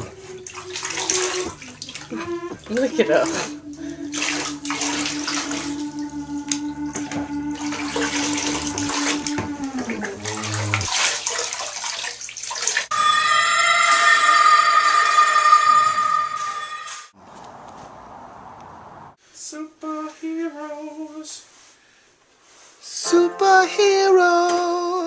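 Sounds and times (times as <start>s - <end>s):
low drone sliding down: 0.0s - 10.9s
steady high tone: 0.0s - 10.9s, 12.9s - 17.1s
water pouring into bathtub: 0.0s - 12.9s.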